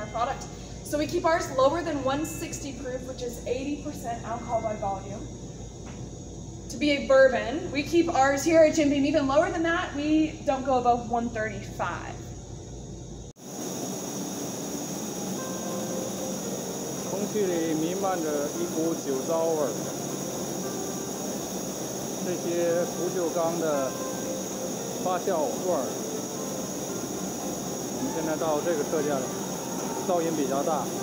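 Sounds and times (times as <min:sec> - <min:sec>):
constant industrial hiss: 0:00.0 - 0:31.0
low machine hum: 0:00.0 - 0:31.0.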